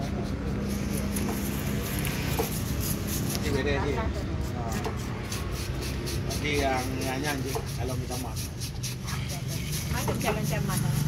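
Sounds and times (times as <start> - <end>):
knife scratching fish skin: 0.0 - 11.0.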